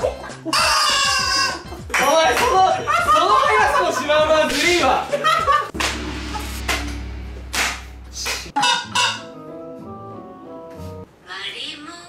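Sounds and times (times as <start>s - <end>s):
background music: 0.0s - 11.1s.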